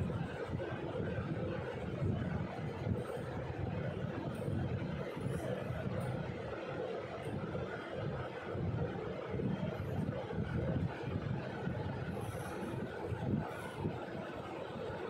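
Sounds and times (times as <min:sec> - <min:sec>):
low rumbling background noise: 0:00.0 - 0:15.0.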